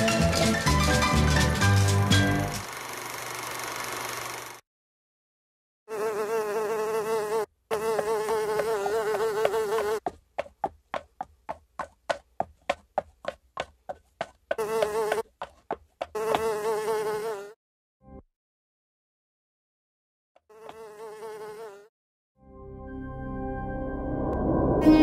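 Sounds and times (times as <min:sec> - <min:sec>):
housefly buzzing: 0:05.9 - 0:10.1, 0:14.5 - 0:17.6, 0:20.4 - 0:21.9.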